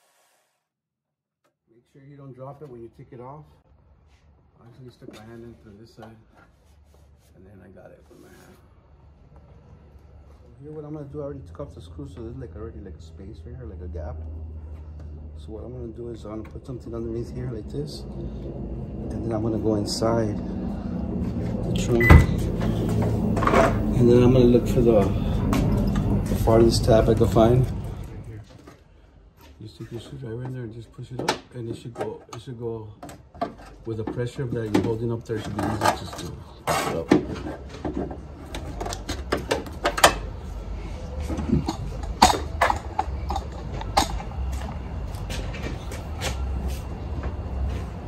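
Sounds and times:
low steady rumble: 9.0 - 28.5.

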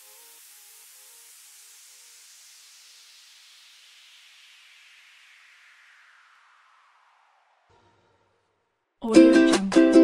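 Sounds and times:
falling white-noise sweep: 0.0 - 7.7.

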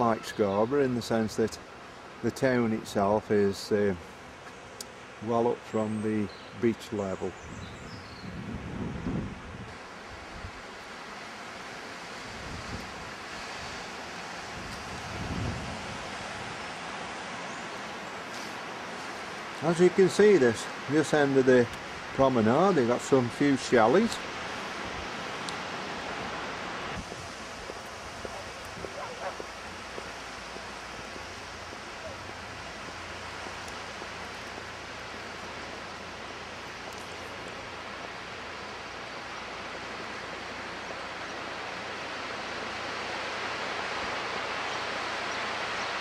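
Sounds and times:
wind: 0.0 - 46.0
sea surf: 9.4 - 46.0.

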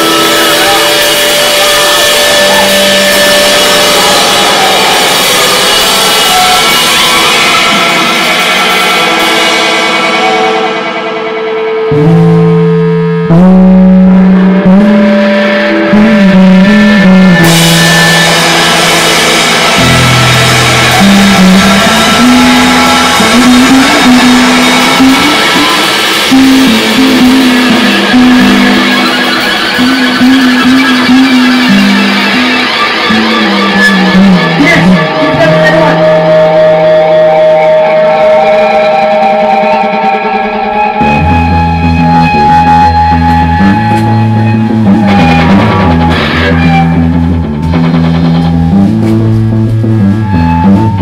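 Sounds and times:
electric guitars droning chord: 0.0 - 51.0
live band playing distorted notes: 0.0 - 51.0.

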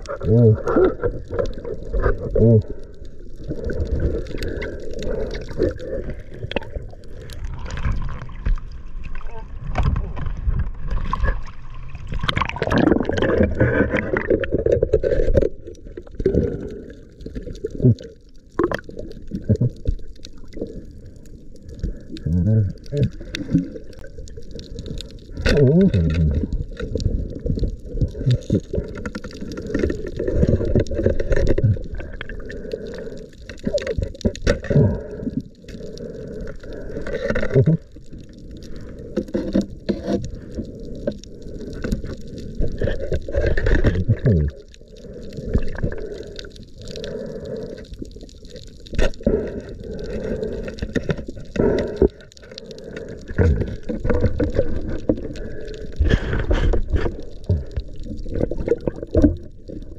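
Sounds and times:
muffled underwater swimming: 0.0 - 59.9
water sloshing and gurgling: 0.0 - 59.9.

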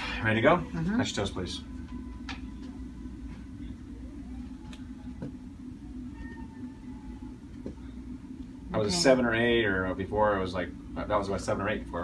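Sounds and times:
faint whining tones: 0.0 - 12.0
low room hum: 0.0 - 12.0.

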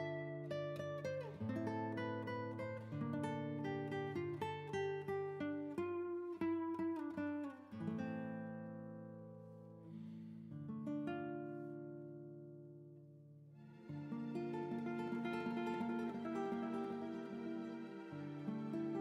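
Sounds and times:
picked acoustic guitar: 0.0 - 19.0.

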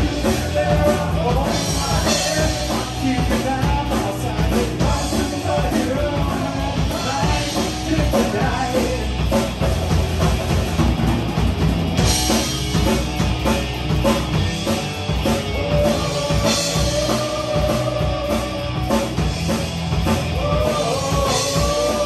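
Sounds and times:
rock band playing: 0.0 - 22.0.

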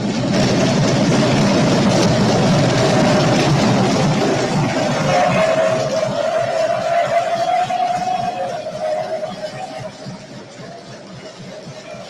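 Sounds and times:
crowd applauding: 0.4 - 12.0.

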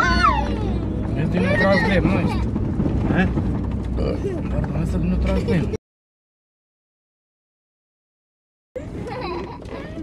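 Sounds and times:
vehicle engine droning: 0.0 - 5.8.

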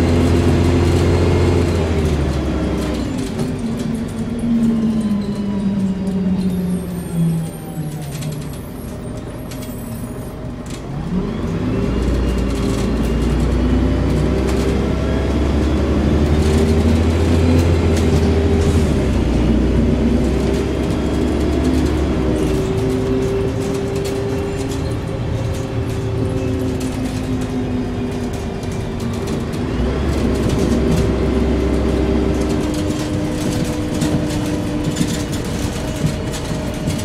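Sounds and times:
bus diesel engine rumbling: 0.0 - 37.0.

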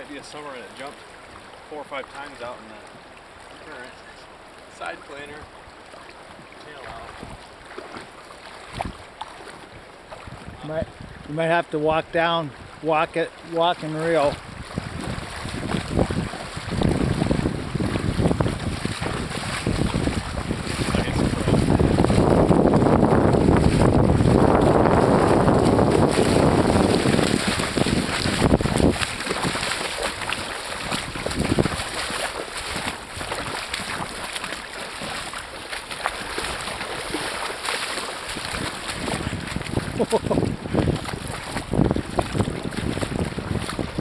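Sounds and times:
river water rushing and splashing: 0.0 - 44.0
wind buffeting microphone: 10.2 - 11.3, 14.2 - 34.3, 36.2 - 44.0.

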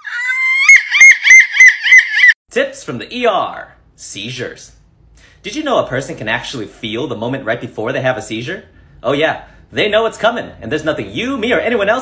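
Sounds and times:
woman screeching: 0.0 - 2.4.

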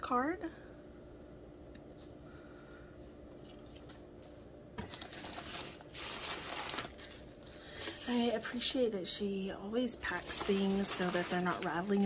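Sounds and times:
low steady hum: 0.0 - 12.0
rustling packing materials: 3.3 - 8.7, 9.9 - 12.0.

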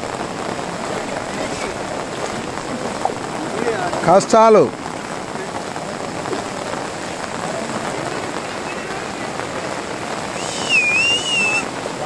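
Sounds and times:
floodwater rushing: 0.0 - 12.0
heavy rain falling: 0.0 - 12.0.

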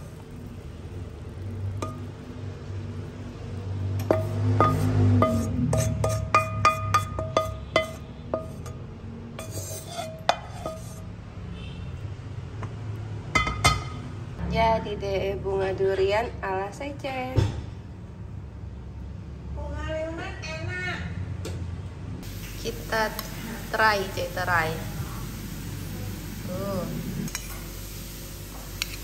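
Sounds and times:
metal utensil scraping dish: 4.0 - 8.8, 9.4 - 11.1.

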